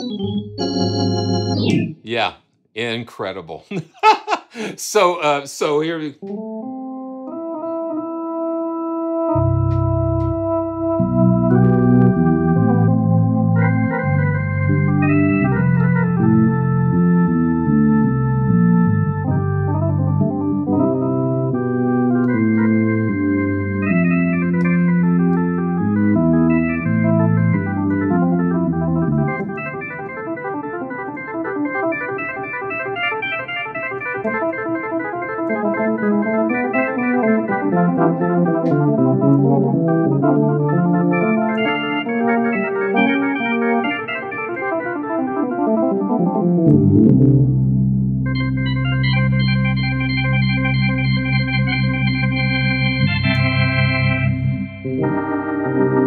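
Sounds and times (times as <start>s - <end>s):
organ playing held chords: 0.0s - 2.0s, 6.2s - 56.0s.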